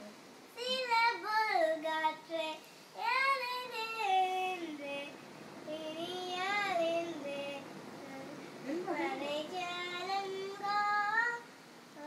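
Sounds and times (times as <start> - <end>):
girl singing unaccompanied: 0.5 - 12.0.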